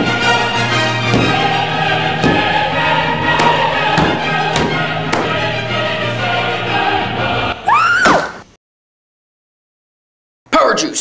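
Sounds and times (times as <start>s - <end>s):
choral music with held notes: 0.0s - 7.7s
short thumps: 1.1s - 2.7s, 3.3s - 5.5s.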